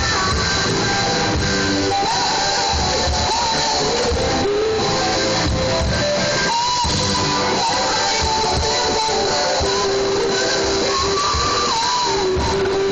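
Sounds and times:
drum kit: 0.0 - 12.9
electric guitars: 0.0 - 12.9.

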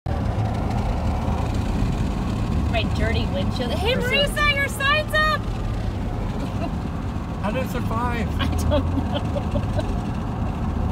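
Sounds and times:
car road and engine noise: 0.1 - 10.9.

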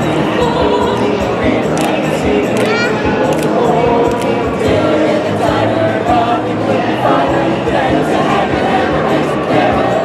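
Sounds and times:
mixed choir singing: 0.0 - 10.0.

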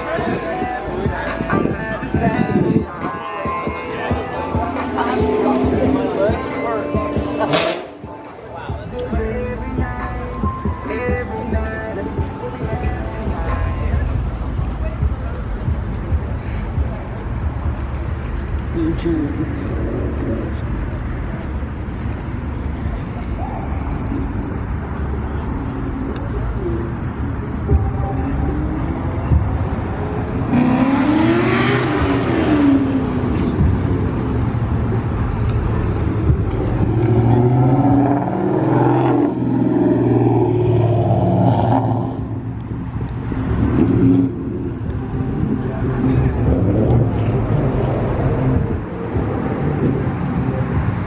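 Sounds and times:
people talking: 0.0 - 9.3, 18.7 - 20.7
car engines rumbling: 0.0 - 51.0.

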